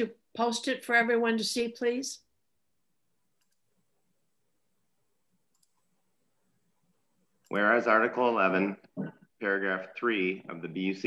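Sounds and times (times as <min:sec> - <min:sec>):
faint computer mouse clicks: 0:03.4 - 0:03.6, 0:05.5 - 0:05.9.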